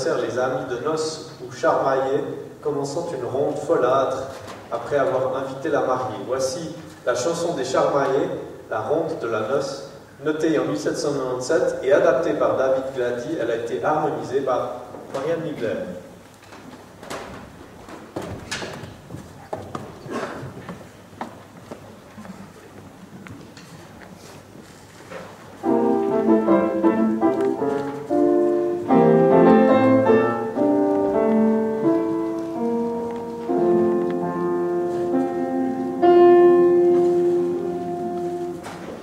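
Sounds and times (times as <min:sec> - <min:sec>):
faint knocks and shuffling: 0:03.3 - 0:07.3, 0:14.8 - 0:36.0, 0:36.6 - 0:39.0
grand piano chords: 0:25.6 - 0:39.0.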